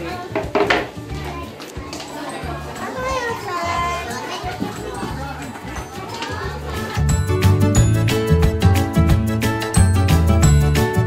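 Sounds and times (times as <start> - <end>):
children chattering and calling out: 0.0 - 7.4.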